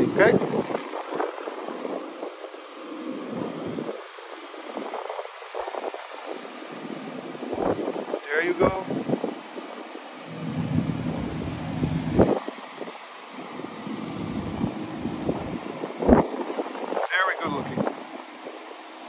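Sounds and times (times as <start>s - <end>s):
car engine idling: 9.5s - 16.9s.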